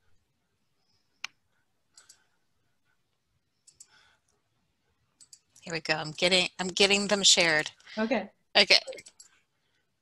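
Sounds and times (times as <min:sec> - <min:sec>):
small clicks: 0:01.2 - 0:02.3, 0:03.6 - 0:04.0, 0:05.2 - 0:05.7, 0:09.0 - 0:09.4.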